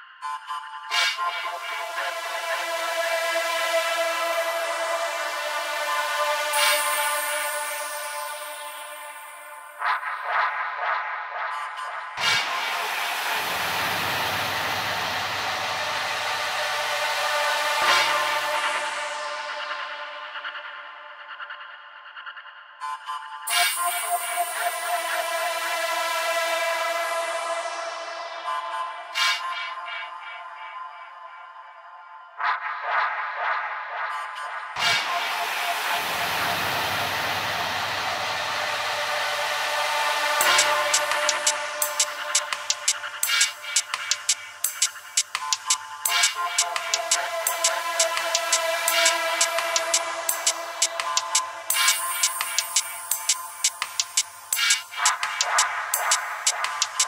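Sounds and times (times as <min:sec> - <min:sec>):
low electronic drone: 0:00.2 - 0:21.2, 0:32.7 - 0:57.0.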